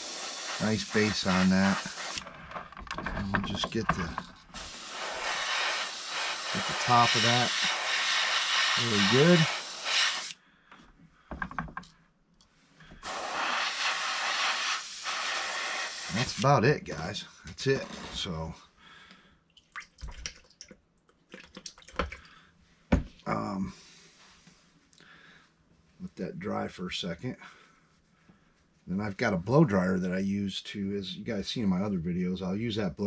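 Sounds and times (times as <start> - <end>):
airbrush air hiss: 0.0 - 2.3, 4.2 - 10.4, 13.0 - 16.5.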